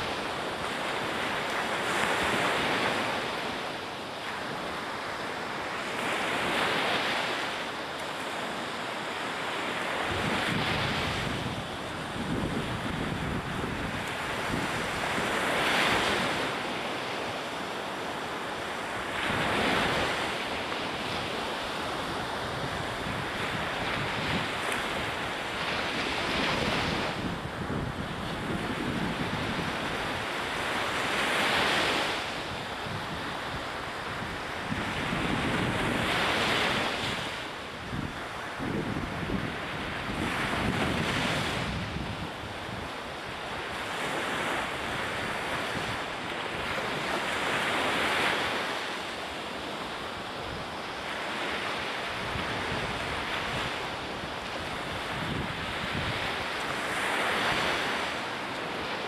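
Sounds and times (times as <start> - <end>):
waves breaking on beach: 0.0 - 59.0
wind buffeting microphone: 9.8 - 16.5, 18.8 - 48.8, 49.6 - 59.0.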